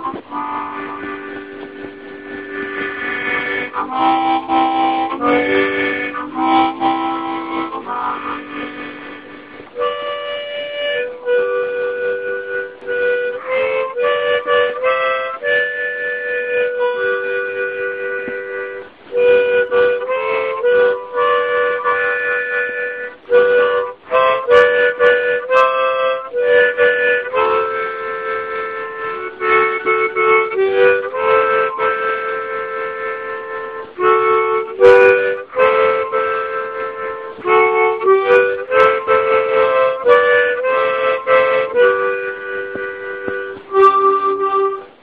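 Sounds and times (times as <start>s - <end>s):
solo harmonica: 0.0s - 45.0s.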